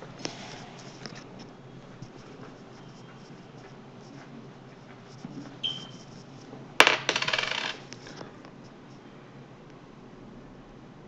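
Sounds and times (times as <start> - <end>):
small object clattering on desk: 6.8 - 7.8.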